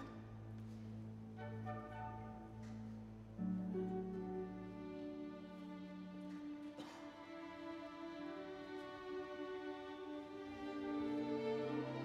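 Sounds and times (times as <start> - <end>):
orchestra playing softly: 0.0 - 12.0.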